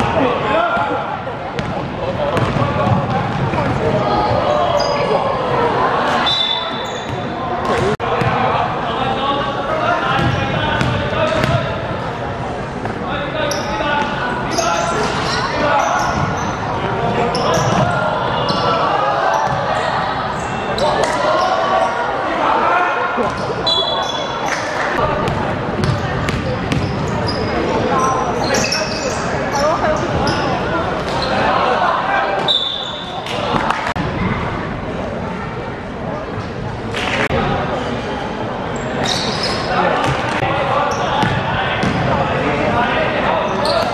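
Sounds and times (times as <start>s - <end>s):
ball bouncing on wooden court: 2.4s - 3.8s, 10.2s - 11.6s, 25.2s - 27.0s.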